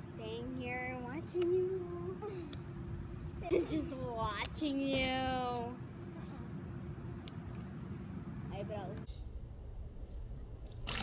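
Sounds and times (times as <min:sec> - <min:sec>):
low background noise: 0:00.0 - 0:10.7
water spat out: 0:10.7 - 0:11.0.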